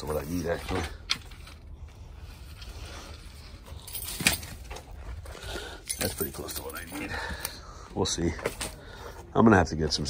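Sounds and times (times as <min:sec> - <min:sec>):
handling noise: 0:02.4 - 0:07.1
footsteps on gravelly ground: 0:03.5 - 0:10.0.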